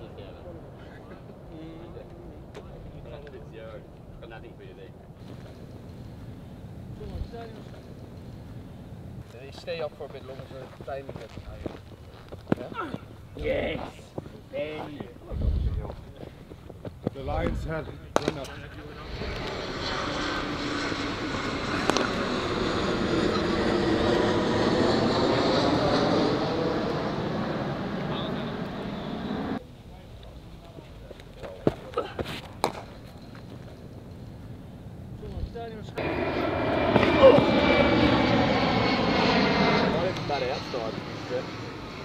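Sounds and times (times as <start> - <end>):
aircraft engines roaring overhead: 0.0 - 42.0.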